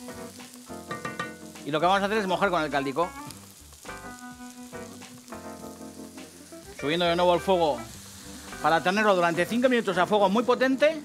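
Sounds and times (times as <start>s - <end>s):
rice sizzling in a hot pan: 0.0s - 11.0s.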